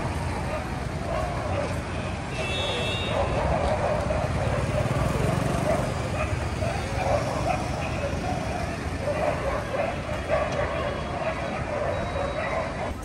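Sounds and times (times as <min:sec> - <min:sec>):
crowd chattering: 0:00.0 - 0:13.0
low traffic rumble: 0:00.0 - 0:13.0
motor scooter passing: 0:00.0 - 0:13.0.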